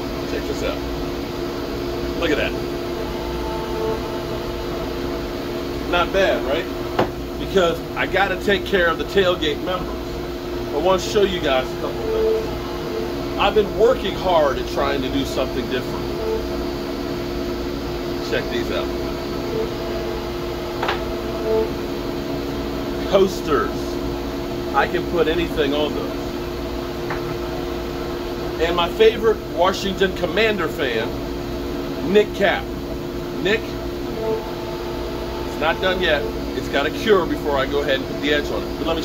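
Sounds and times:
workshop machinery humming: 0.0 - 39.0.

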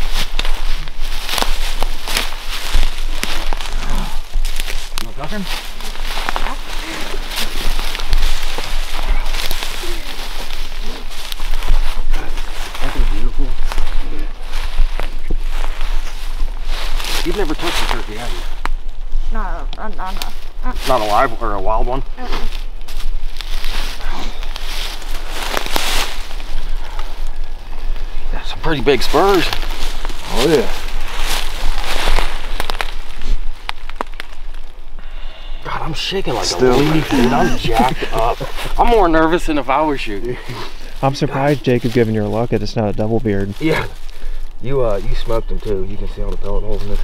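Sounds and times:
footsteps crunching dry leaves: 0.0 - 19.2, 20.4 - 21.6, 22.2 - 35.0, 36.0 - 47.0
voices: 3.2 - 16.3, 17.1 - 18.6, 19.3 - 22.5, 26.7 - 30.9, 35.0 - 47.0.

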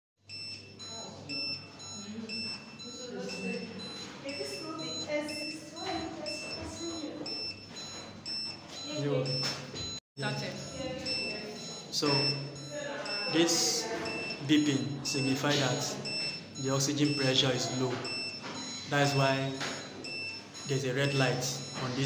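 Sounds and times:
high electronic alarm beeps: 0.2 - 22.0.

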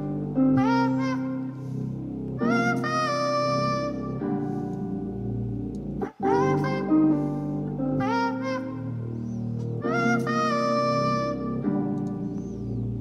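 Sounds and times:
auto-tuned vocal melody: 0.0 - 5.4, 6.0 - 13.0
guitar chords: 0.0 - 13.0.

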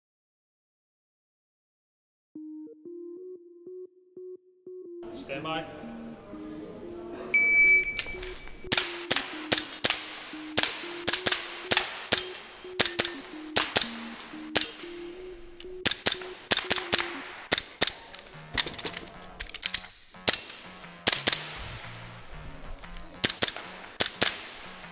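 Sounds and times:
shot timer beep: 7.3 - 17.3
airsoft pistol shots: 8.7 - 14.8, 20.2 - 21.6, 23.2 - 24.6.

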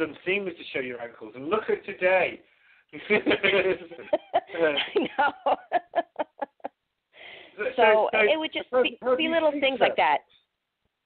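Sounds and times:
person laughing: 3.2 - 6.7
person speaking: 7.6 - 10.3.

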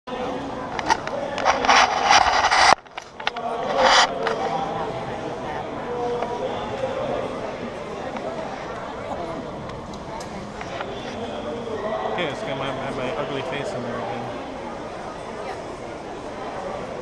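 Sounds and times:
crowd hubbub: 0.1 - 17.0.

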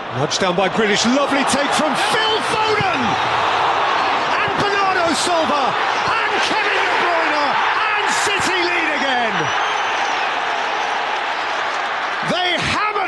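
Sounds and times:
stadium crowd roaring and cheering: 0.0 - 13.0.

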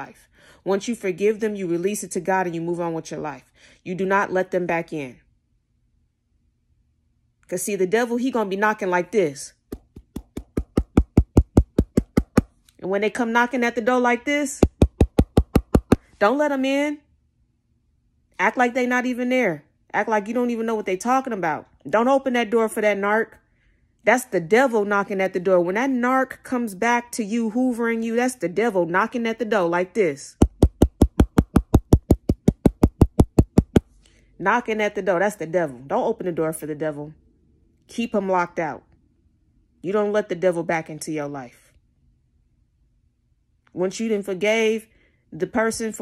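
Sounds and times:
fist knocking on hard surface: 9.7 - 12.5, 14.6 - 16.0, 30.4 - 33.8.

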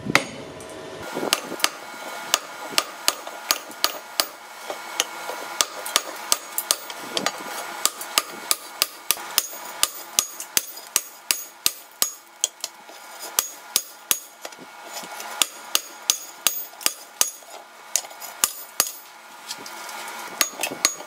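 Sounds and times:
hammer striking steel on anvil: 0.1 - 0.4, 1.3 - 14.5, 15.4 - 19.1, 20.4 - 21.0.

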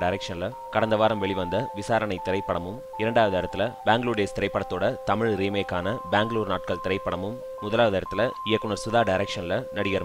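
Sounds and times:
background music with held tones: 0.0 - 10.0
man narrating: 0.0 - 10.0.

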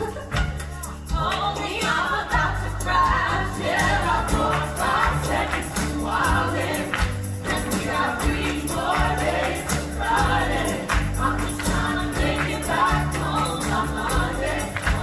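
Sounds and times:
band with bass and beat: 0.0 - 15.0
voices singing together: 0.8 - 15.0.

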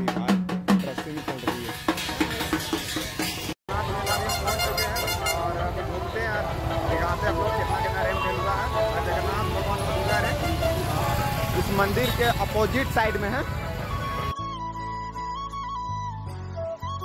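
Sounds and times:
background music: 0.0 - 17.0
horns tooting: 1.4 - 14.3
engine rumble of passing vehicles: 1.7 - 14.3.

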